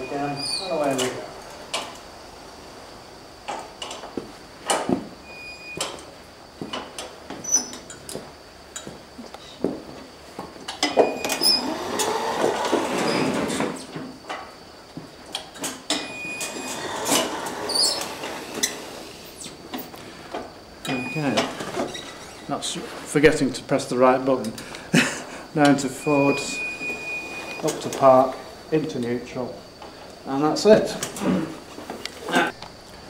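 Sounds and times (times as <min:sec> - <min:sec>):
electric go-kart motor whirring: 0:11.2 - 0:13.6, 0:16.4 - 0:19.3.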